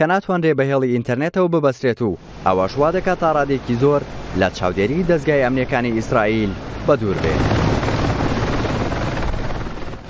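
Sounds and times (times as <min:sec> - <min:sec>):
helicopter rotor and turbine: 0:02.2 - 0:10.0.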